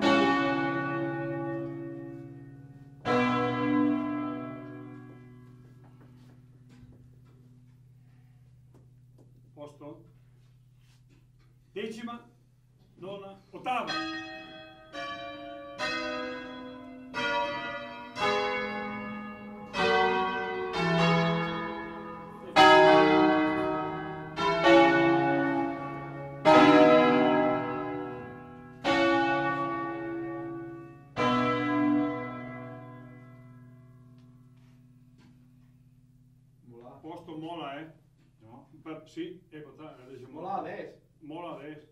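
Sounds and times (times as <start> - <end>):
church bells ringing: 0.0 - 7.4, 13.6 - 35.4.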